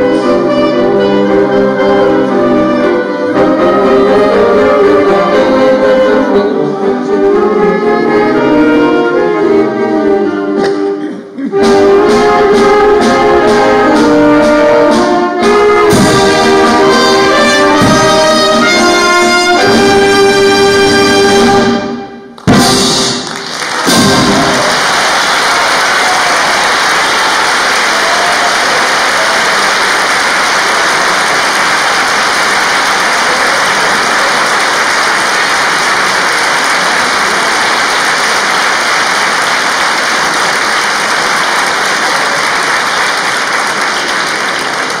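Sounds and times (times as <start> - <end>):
brass and wind band chord: 0.0 - 23.2
audience applause: 23.1 - 45.0.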